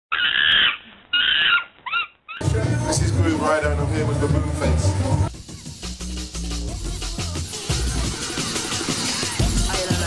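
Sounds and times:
primate calls: 0.1 - 2.4.

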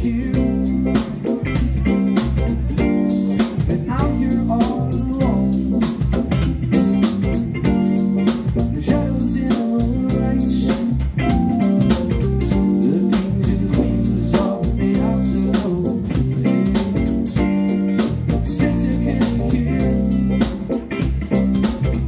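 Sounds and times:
bass guitar: 0.0 - 22.0
drum kit with hi-hat beat: 0.0 - 22.0
electric guitar: 0.0 - 22.0
keyboard: 0.0 - 22.0.

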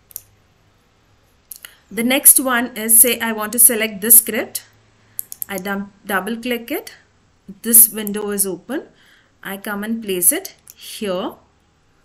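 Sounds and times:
computer mouse clicks: 5.2 - 5.6.

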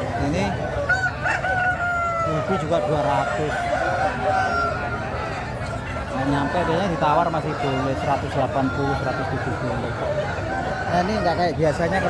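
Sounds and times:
crowd chatter: 0.0 - 12.0
rooster crowing: 0.8 - 5.2.

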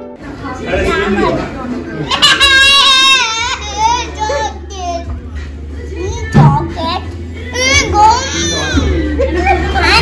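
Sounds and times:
child's high-pitched vocalisations: 6.0 - 8.8.

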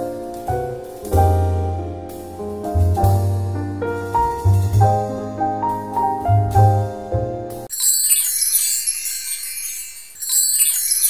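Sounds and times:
high shimmering chimes: 7.7 - 11.0.

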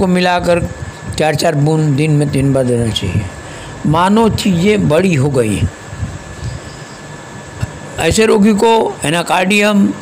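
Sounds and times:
faint high hum: 0.0 - 10.0
steady background noise: 0.0 - 10.0.

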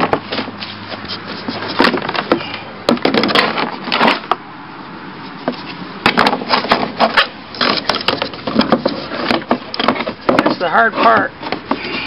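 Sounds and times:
knocks and scrapes on wood frame: 0.0 - 4.5, 5.2 - 12.0.

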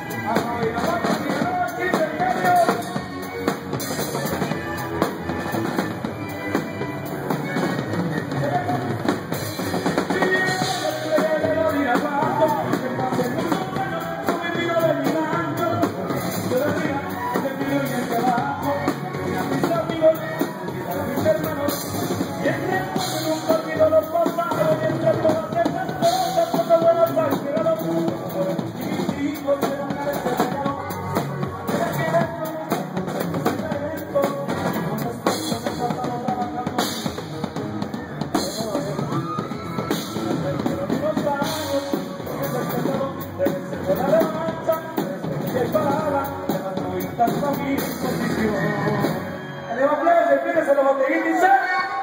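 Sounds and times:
drum kit beat: 0.0 - 49.4
band playing: 0.0 - 52.0.

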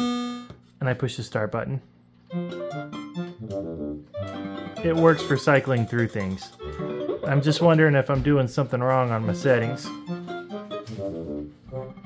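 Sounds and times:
pinball machine game music: 2.3 - 8.0, 8.9 - 12.0.

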